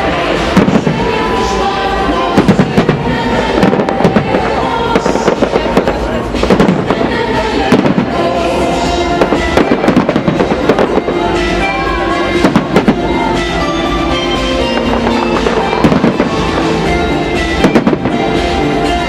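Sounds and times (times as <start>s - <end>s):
firework bangs and crackles: 0.0s - 19.0s.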